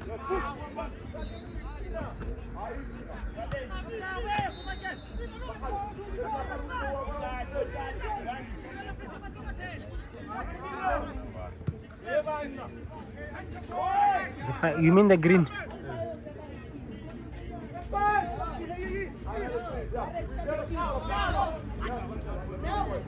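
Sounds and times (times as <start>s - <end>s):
spectators chattering: 0.0s - 23.0s.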